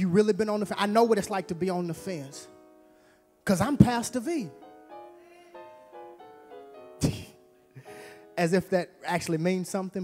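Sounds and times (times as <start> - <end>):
soft music of held chords: 0.0 - 10.0.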